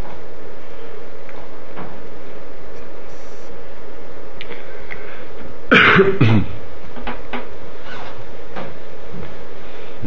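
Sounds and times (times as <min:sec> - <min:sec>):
steady background hiss: 0:00.0 - 0:10.0
man clearing his throat: 0:05.7 - 0:06.6.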